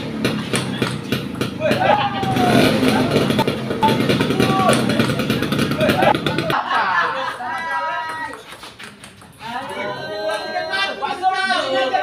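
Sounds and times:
low engine rumble: 0.0 - 6.6
people's voices: 0.4 - 12.0.

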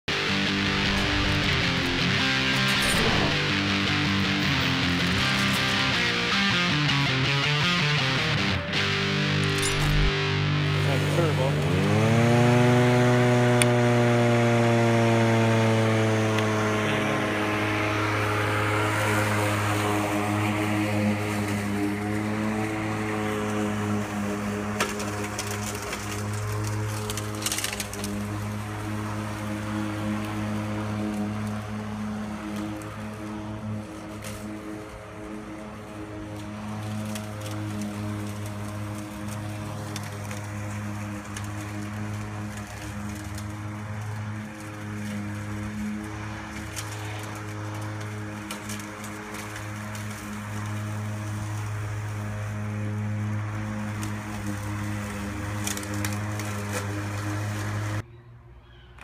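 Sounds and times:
electric lawn mower running: 0.1 - 58.0.

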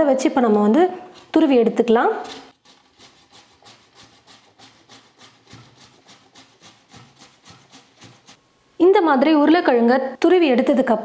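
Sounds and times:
potato grating on a metal grater: 2.2 - 8.4.

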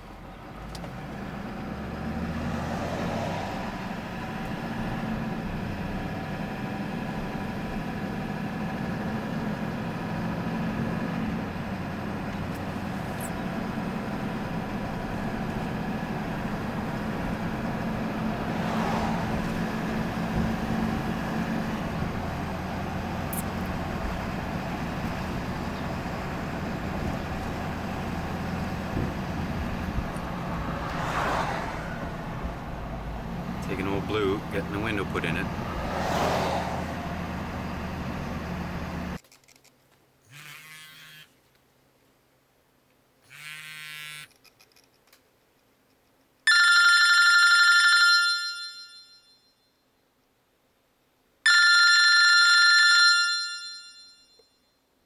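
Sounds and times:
truck engine hum: 0.0 - 39.2
road noise: 0.0 - 49.0.

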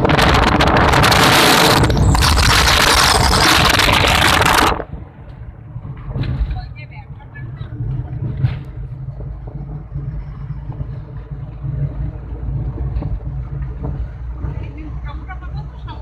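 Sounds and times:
car engine and road rumble: 0.0 - 16.0.

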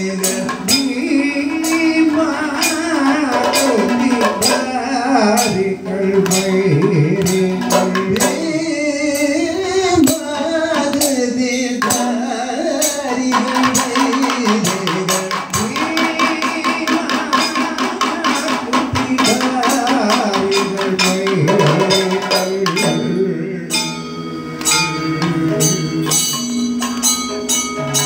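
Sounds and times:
drums: 0.0 - 28.0
two people singing: 0.0 - 28.0
gong and cymbals: 12.8 - 28.0.

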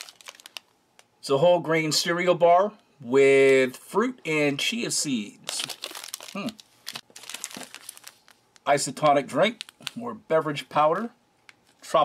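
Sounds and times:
foil sachet crinkling: 0.0 - 0.7, 5.4 - 10.1.

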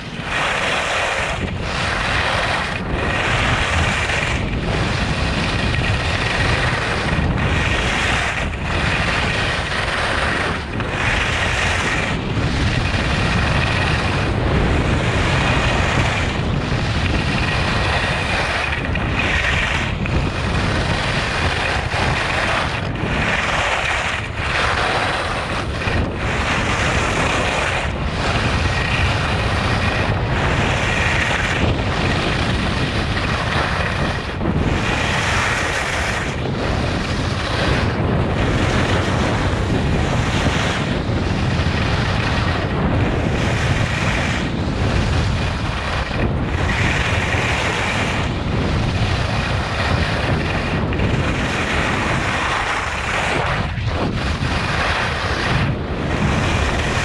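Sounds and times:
skis scraping on snow: 0.0 - 57.0
wind buffeting microphone: 0.0 - 57.0.

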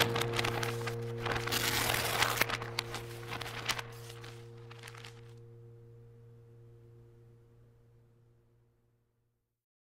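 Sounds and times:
faint crackles: 0.0 - 5.6
faint higher steady tones: 0.0 - 9.4
low steady hum: 0.0 - 9.5.

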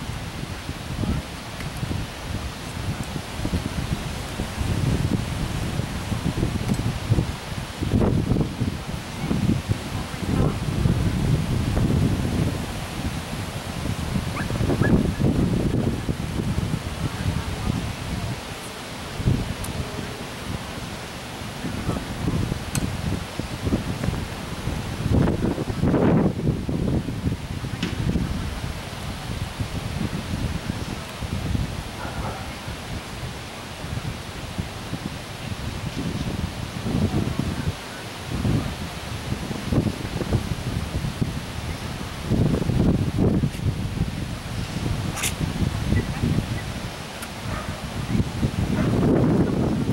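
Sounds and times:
wind buffeting microphone: 0.0 - 49.9.

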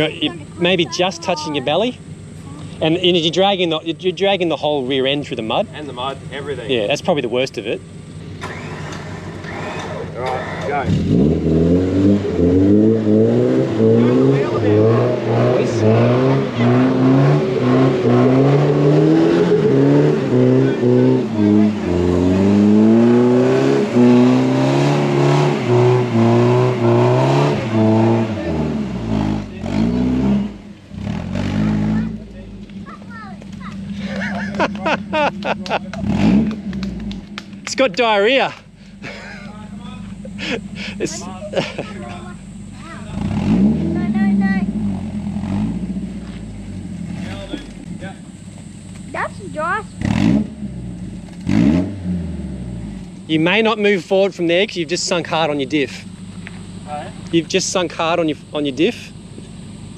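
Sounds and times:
voices calling out: 0.0 - 11.0, 12.1 - 50.1
engine idling: 0.0 - 11.1, 27.6 - 51.5, 52.2 - 59.9
truck engine revving under load: 0.0 - 59.9.

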